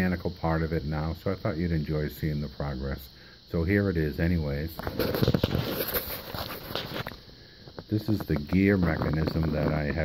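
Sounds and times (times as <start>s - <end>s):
phone handling rustle: 4.8s - 7.2s.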